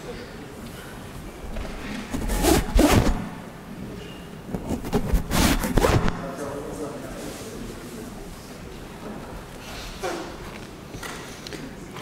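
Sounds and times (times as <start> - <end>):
handling noise on microphone: 1.2 - 6.5.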